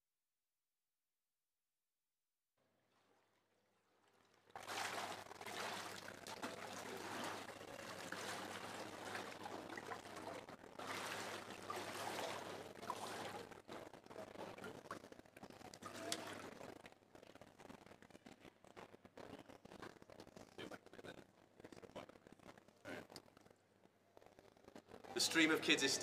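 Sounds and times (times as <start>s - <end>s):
water sloshing and splashing: 2.8s - 16.9s.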